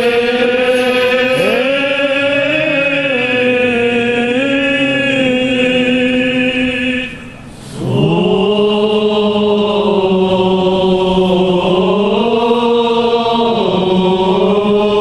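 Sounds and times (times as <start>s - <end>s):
men chanting: 0.0s - 15.0s.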